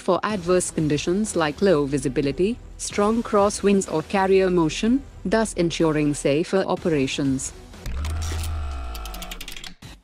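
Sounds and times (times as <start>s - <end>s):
held synthetic tone: 7.8s - 9.7s
quick mechanical clicks: 7.8s - 9.8s.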